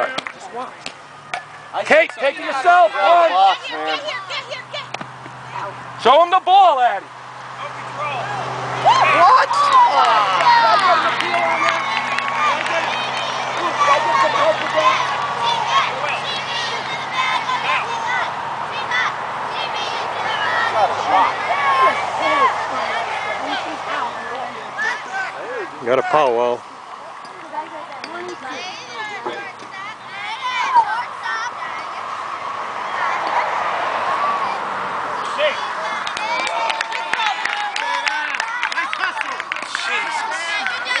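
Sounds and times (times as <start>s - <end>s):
voices calling out and chattering: 0.0s - 41.0s
hand claps: 10.0s - 15.4s, 36.0s - 41.0s.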